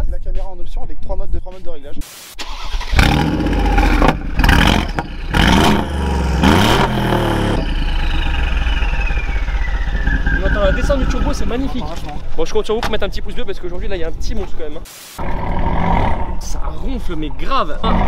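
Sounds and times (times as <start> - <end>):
car engine revving and idling: 2.9 - 11.6
high whistle sliding down: 7.9 - 11.6.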